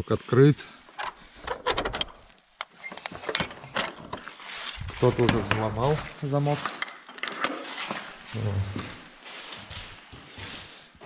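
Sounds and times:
padlock metallic clicks and rattles: 1.0s - 4.2s.

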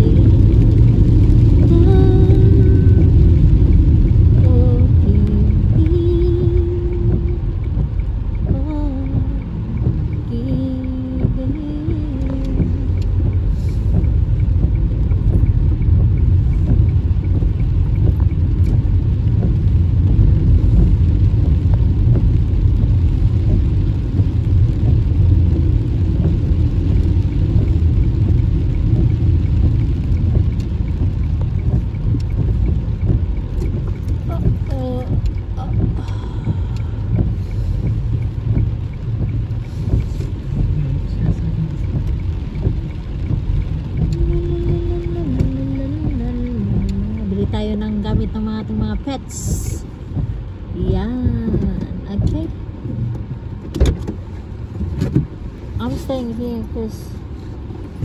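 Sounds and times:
car driving on wet road: 0.0s - 58.0s.

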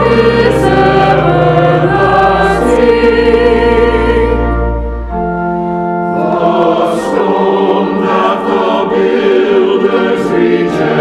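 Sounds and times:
church choir singing: 0.0s - 11.0s
organ chord: 0.0s - 11.0s.

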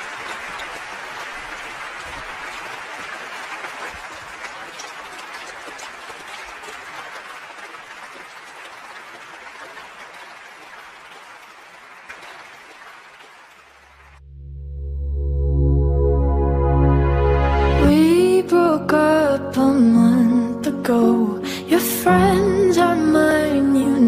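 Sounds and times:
audience applauding: 0.0s - 14.2s.

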